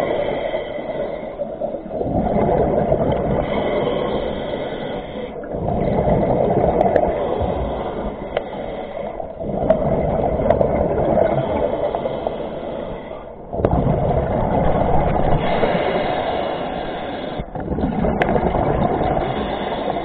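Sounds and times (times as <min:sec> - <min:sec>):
scuba regulator bubbles rushing: 0:01.6 - 0:04.5, 0:05.4 - 0:08.4, 0:09.2 - 0:12.4, 0:13.5 - 0:20.0.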